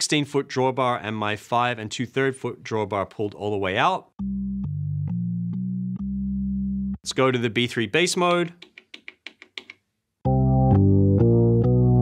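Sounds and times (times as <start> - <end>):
organ playing low bass notes: 4.2 - 7.1, 10.3 - 12.0.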